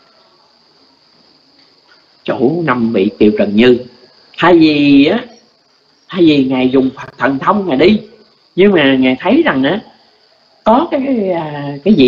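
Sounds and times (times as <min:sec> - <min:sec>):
faint high-pitched drone: 0:00.0 - 0:12.0.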